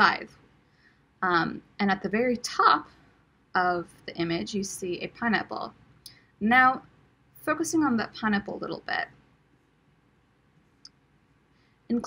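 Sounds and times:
woman speaking: 0:00.0 - 0:00.3, 0:01.2 - 0:02.9, 0:03.6 - 0:05.7, 0:06.4 - 0:06.8, 0:07.4 - 0:09.1.

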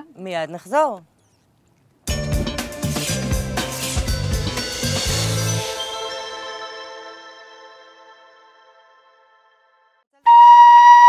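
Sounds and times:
held flute-like note: 0:10.2 - 0:11.0.

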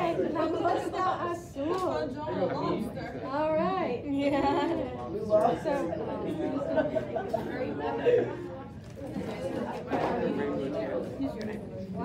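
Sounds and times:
classroom chatter: 0:00.0 - 0:12.0.

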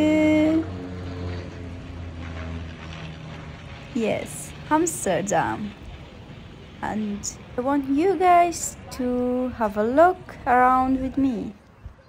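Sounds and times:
vehicle engines rumbling: 0:00.0 - 0:12.0
faint voices: 0:04.0 - 0:12.0.

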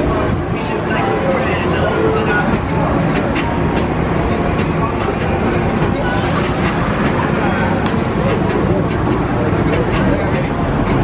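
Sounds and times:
steady traffic: 0:00.0 - 0:11.0
voices of passers-by: 0:00.0 - 0:11.0.

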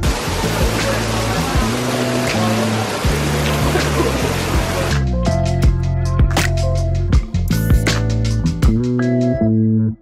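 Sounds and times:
heavy rain on pavement: 0:00.0 - 0:05.1
background music: 0:00.0 - 0:10.0.

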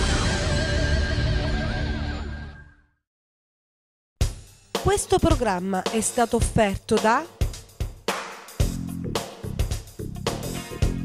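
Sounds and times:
news theme music: 0:04.8 - 0:07.6, 0:08.6 - 0:11.0.

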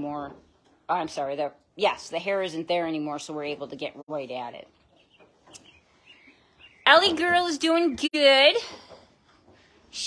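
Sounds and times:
woman speaking: 0:00.0 - 0:04.7, 0:06.9 - 0:08.8
faint high bird chirps: 0:04.8 - 0:07.5.

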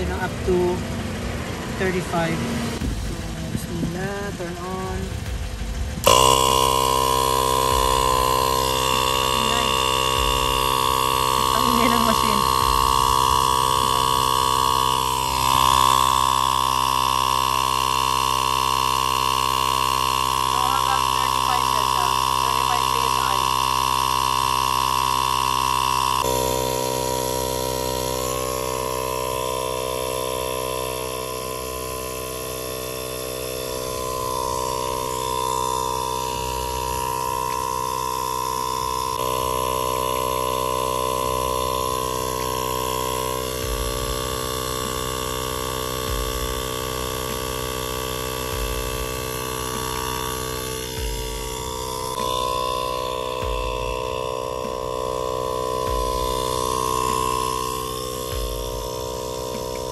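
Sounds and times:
air compressor running: 0:00.0 - 0:59.9.

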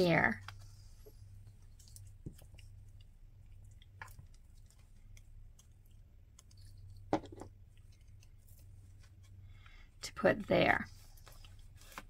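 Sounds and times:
low steady hum: 0:00.0 - 0:12.0
paper rustling: 0:10.9 - 0:12.0.

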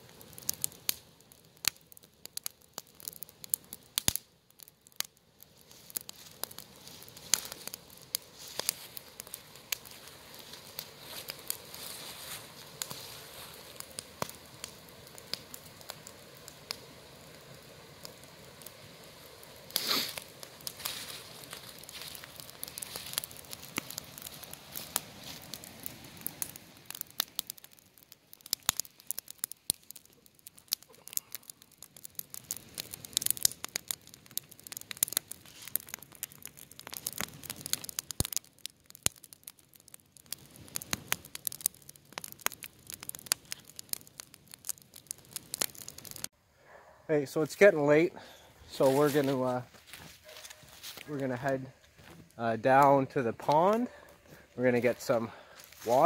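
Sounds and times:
wood fire crackling and popping: 0:00.0 - 0:46.4, 0:47.1 - 0:56.0
rush of flame: 0:04.9 - 0:38.4, 0:39.0 - 0:46.3.

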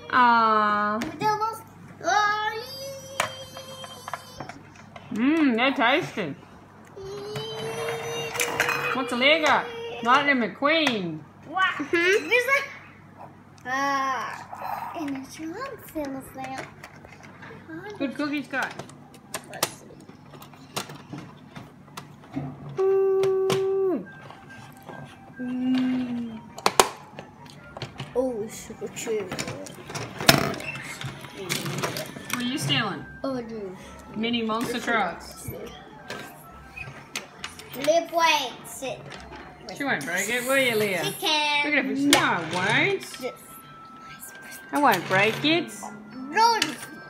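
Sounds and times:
child humming: 0:22.8 - 0:24.1, 0:25.4 - 0:26.6.

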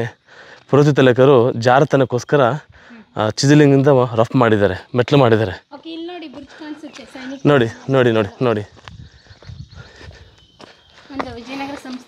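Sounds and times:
footsteps on stony ground: 0:00.4 - 0:01.0, 0:05.7 - 0:12.0.

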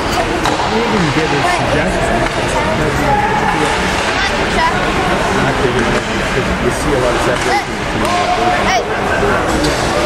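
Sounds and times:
ice rink arena din: 0:00.0 - 0:10.0
spectators chattering: 0:00.0 - 0:10.0.

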